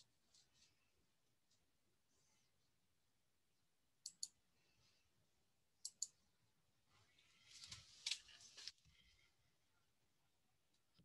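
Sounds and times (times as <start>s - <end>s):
computer mouse clicks: 4.0s - 4.4s, 5.8s - 6.2s.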